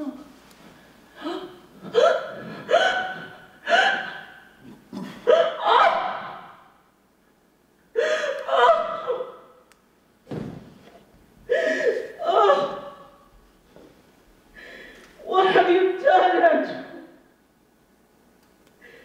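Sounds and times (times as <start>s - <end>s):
woman gasping cries into microphone: 1.2s - 4.4s, 11.5s - 12.8s.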